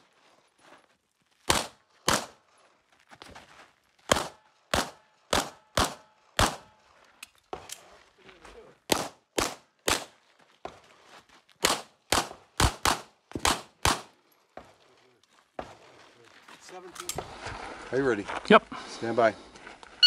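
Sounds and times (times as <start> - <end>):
pistol shots: 1.5 - 2.4, 4.1 - 6.7, 8.9 - 10.1, 11.6 - 14.1.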